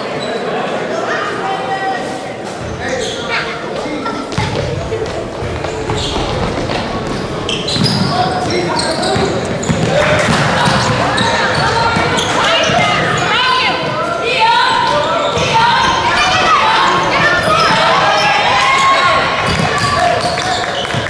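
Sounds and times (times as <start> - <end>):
hubbub of voices: 0.0 - 21.0.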